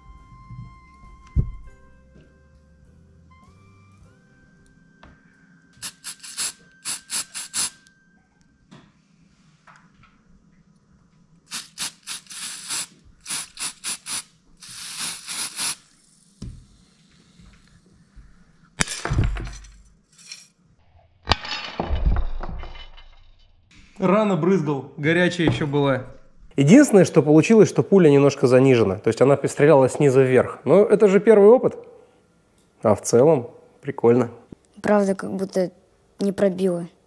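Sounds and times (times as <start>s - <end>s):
faint background music: 0.0s - 9.6s, 23.9s - 37.0s
thumps with handling noise: 0.5s - 2.3s
aerosol spray can hissing: 5.8s - 7.8s, 11.5s - 17.4s.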